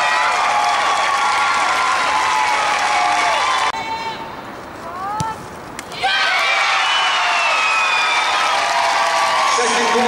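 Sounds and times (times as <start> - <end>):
football crowd cheering: 0.0 - 4.1, 5.9 - 10.0.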